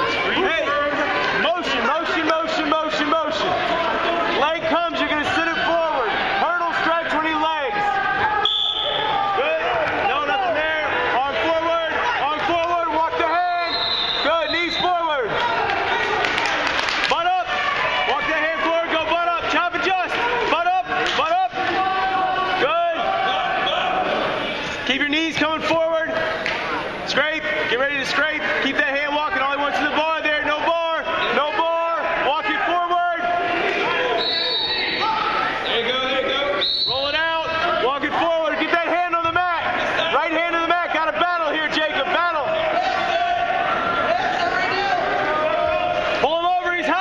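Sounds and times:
people shouting encouragement: 0.0s - 24.4s, 26.8s - 47.0s
crowd murmur: 0.0s - 25.3s.

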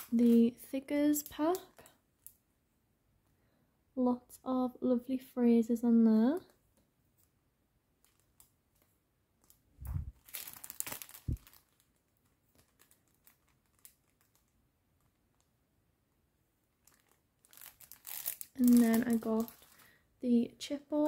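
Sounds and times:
plastic sleeve crinkling: 0.0s - 2.4s, 8.0s - 15.5s, 16.7s - 20.0s.

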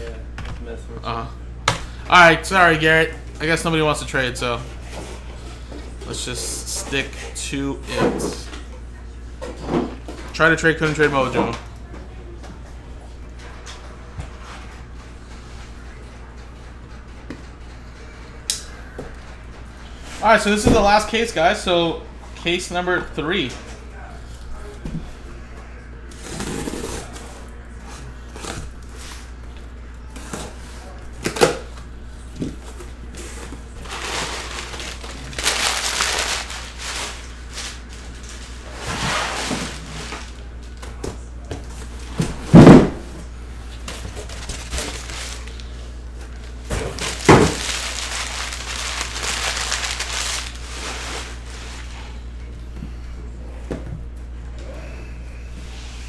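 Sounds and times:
steady low hum: 0.0s - 56.0s
cardboard and tape ripping: 26.2s - 27.3s, 33.8s - 40.3s, 46.7s - 51.4s.

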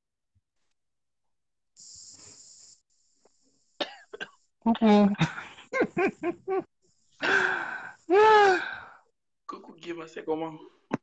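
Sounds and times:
person laughing: 4.9s - 7.4s
breathy sigh: 7.2s - 9.1s.

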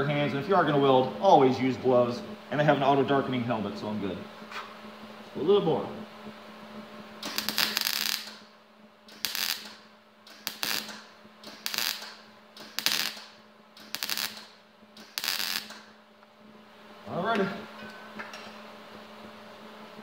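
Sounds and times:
steady low hum: 0.0s - 20.0s
welder arc crackling: 7.0s - 16.0s.

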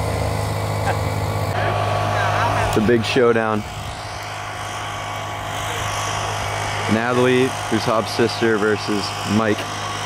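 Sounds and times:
high steady whine: 0.0s - 10.0s
mechanical low hum: 0.0s - 10.0s
outdoor background noise: 0.0s - 10.0s.

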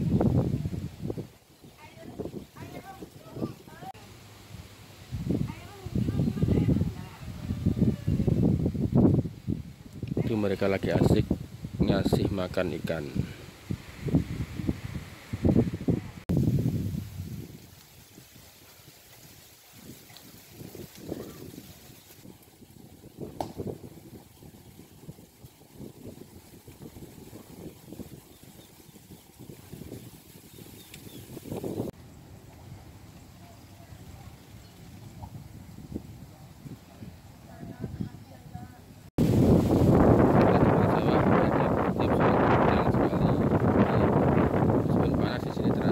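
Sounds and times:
people's voices: 1.8s - 4.1s, 5.4s - 8.4s, 36.2s - 39.0s.

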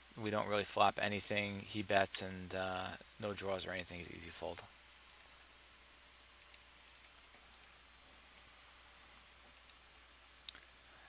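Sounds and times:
faint mouse clicks: 5.1s - 5.4s, 6.2s - 7.8s, 9.4s - 9.8s, 10.4s - 10.9s.

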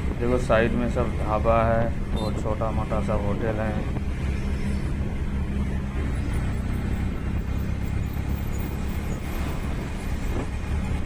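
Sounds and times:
road noise: 0.0s - 11.0s
vehicle engine drone: 0.0s - 11.0s.

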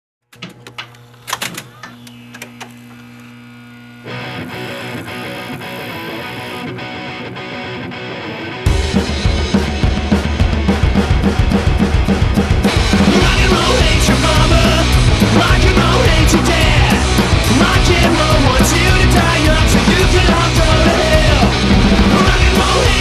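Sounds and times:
live punk rock band: 4.1s - 23.0s
drums crashing: 8.7s - 23.0s.

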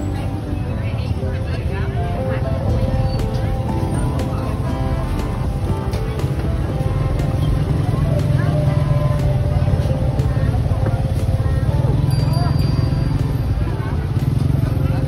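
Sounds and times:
music playing: 0.0s - 15.0s
people talking: 0.0s - 15.0s
traffic engine rumble: 0.0s - 15.0s.

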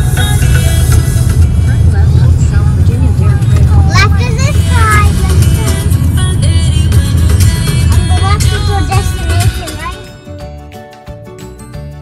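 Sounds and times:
car cabin rumble: 0.0s - 10.1s
music playing: 0.0s - 12.0s
high voice: 3.7s - 5.8s.

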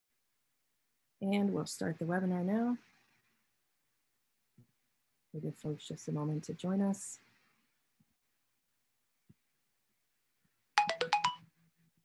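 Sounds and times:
electronic notification chime: 10.8s - 11.4s.

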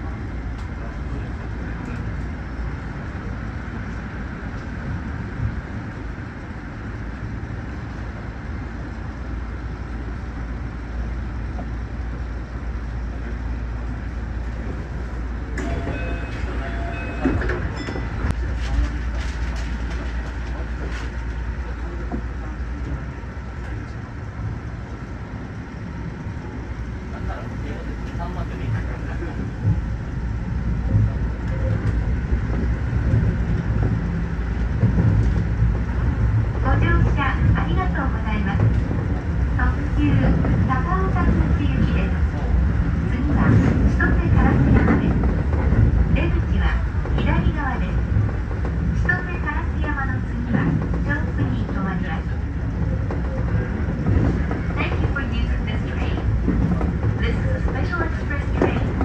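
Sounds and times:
oncoming train passing: 0.0s - 59.0s
train wheels rumbling: 0.0s - 59.0s.

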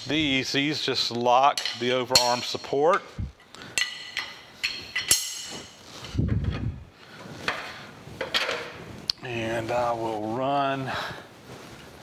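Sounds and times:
wrench clanking on metal: 3.8s - 5.8s.

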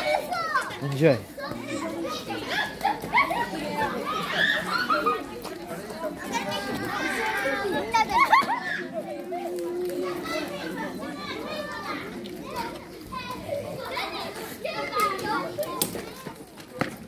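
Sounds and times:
children calling and chattering: 0.0s - 17.0s.

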